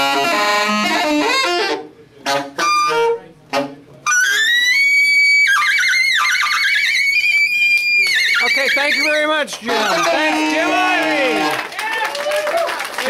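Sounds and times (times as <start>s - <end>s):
high squealing saxophone: 0.0s - 11.6s.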